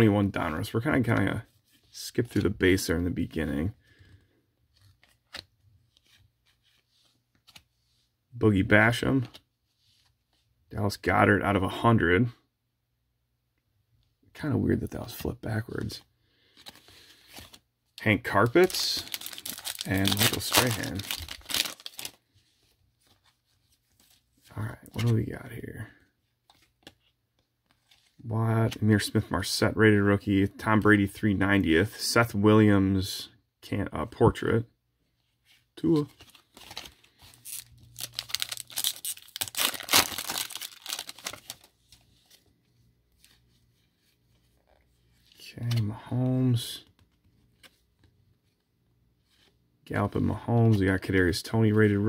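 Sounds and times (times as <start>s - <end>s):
cardboard cards rustling: 0.2s - 10.5s, 15.0s - 28.8s, 35.6s - 46.0s
foil wrapper crinkling and tearing: 18.4s - 22.2s, 36.5s - 41.7s.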